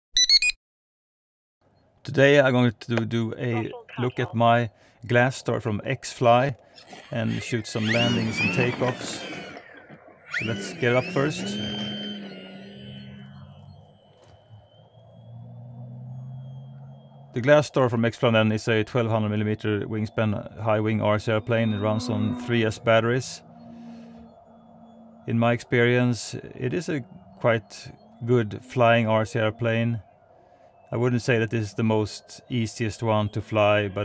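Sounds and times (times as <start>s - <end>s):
rising electronic beeps: 0.2s - 0.6s, 3.5s - 4.7s, 6.8s - 30.2s
model airplane motor whining: 6.7s - 17.3s, 21.5s - 29.1s.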